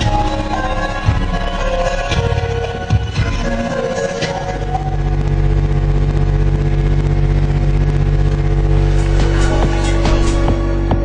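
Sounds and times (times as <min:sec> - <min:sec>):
loud steady bass note: 0:00.0 - 0:11.0.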